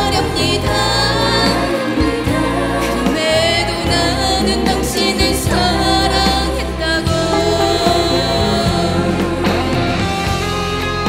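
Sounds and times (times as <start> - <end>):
woman singing: 0.0 - 10.3
ballad with full band: 0.0 - 11.0
electric guitar: 0.0 - 11.0.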